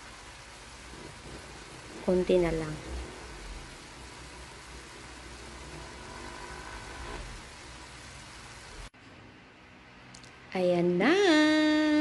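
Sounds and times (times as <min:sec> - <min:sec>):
food sizzling in a frying pan: 0:00.0 - 0:08.9.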